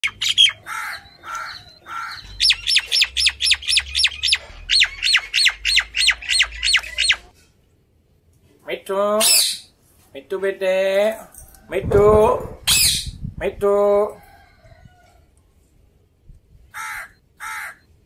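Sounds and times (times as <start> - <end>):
parakeet squawking and screeching: 0.0 - 7.3, 9.2 - 9.7, 12.6 - 13.2, 16.8 - 17.8.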